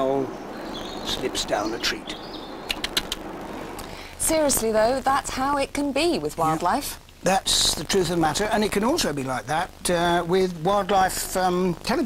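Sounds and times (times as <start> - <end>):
steady hiss: 0.0 - 12.0
sharp clicks: 2.6 - 3.9.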